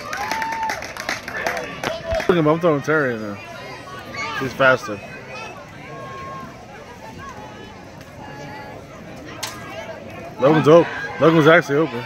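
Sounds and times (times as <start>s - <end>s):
distant overlapping voices: 0.0s - 12.0s.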